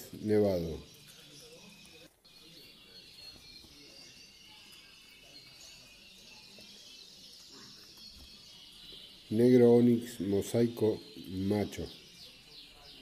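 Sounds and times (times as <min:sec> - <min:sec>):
canaries chirping and singing: 0:00.0 - 0:13.0.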